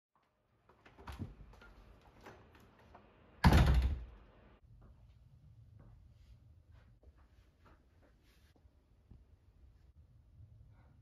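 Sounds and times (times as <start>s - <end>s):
door slamming shut: 3.4s - 4.1s.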